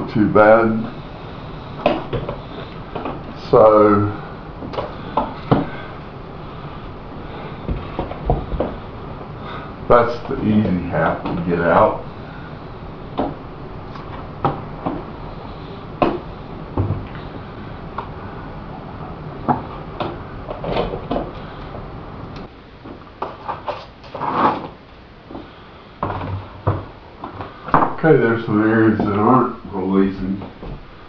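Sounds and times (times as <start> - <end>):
rubbing noises: 23.2 - 24.8.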